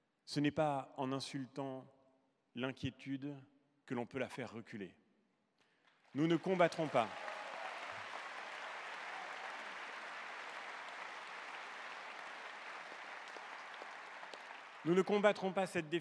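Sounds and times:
audience applauding: 6.1s - 16.0s.

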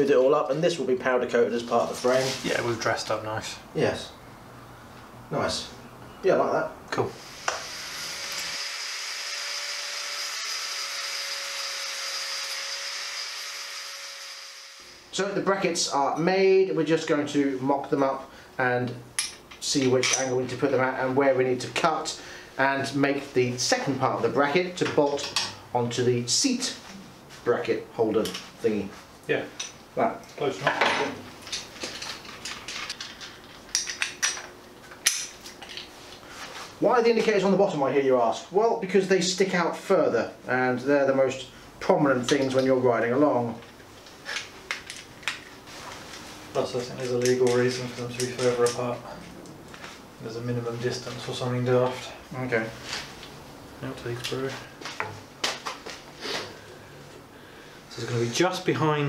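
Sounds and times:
electric power tool running: 7.2s - 15.1s
small metal parts clinking: 31.4s - 35.9s.

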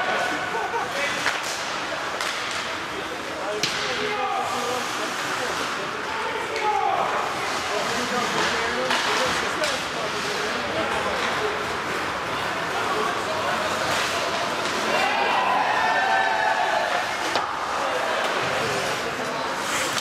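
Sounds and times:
hockey sticks hitting puck and boards: 0.0s - 20.0s
skates on ice: 0.0s - 20.0s
players shouting: 12.7s - 19.0s.

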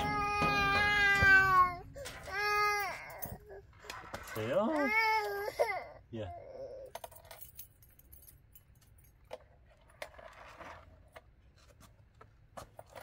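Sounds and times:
toddler squealing: 0.0s - 3.3s.

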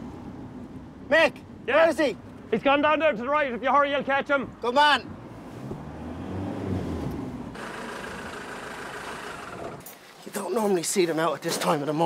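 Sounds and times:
van engine humming: 5.9s - 9.8s.

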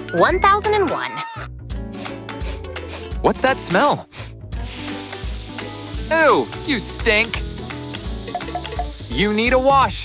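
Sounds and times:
light background music with bass: 0.0s - 10.0s.

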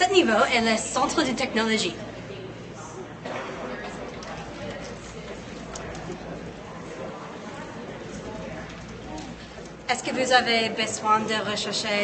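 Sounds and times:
murmur of students: 0.0s - 12.0s.

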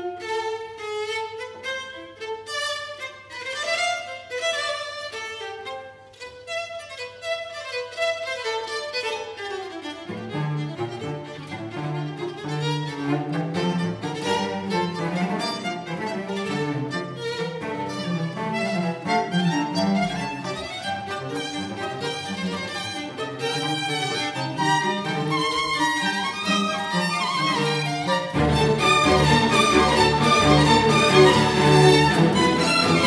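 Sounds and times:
violins and violas playing: 0.0s - 33.0s.

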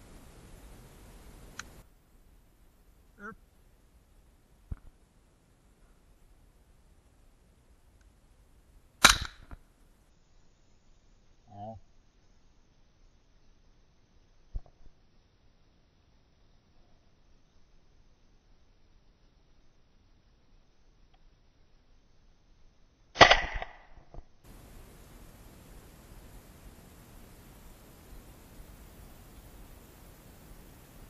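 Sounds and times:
fainter crack: 9.0s - 9.6s, 23.2s - 24.0s
rifle shot: 9.0s - 9.6s, 23.2s - 24.0s.

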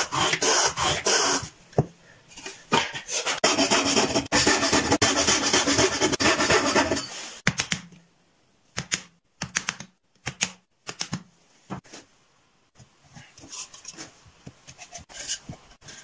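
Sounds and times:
hand plane shaving wood: 3.2s - 7.0s.

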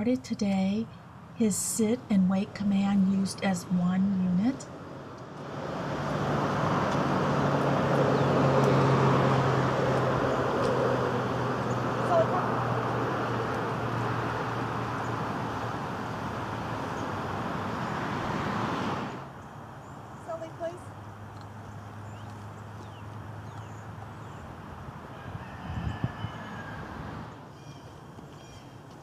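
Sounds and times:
traffic engine hum: 0.0s - 29.0s.

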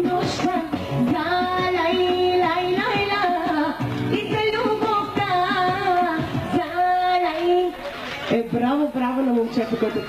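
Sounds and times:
pop-folk music: 0.0s - 9.4s
woman singing: 0.0s - 10.0s.

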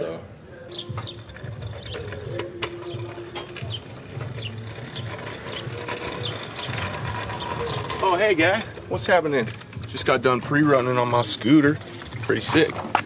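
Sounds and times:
scooter rattling over brick pavers: 0.7s - 13.0s.

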